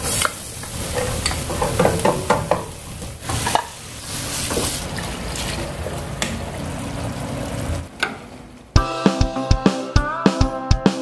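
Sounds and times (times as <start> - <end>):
wooden spatula scraping a pan: 0.0 - 5.7
meat sizzling in a frying pan: 0.0 - 7.2.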